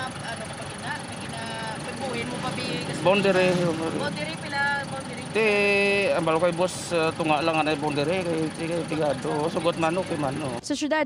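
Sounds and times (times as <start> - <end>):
engine idling: 0.0 - 10.6
man talking: 2.2 - 10.6.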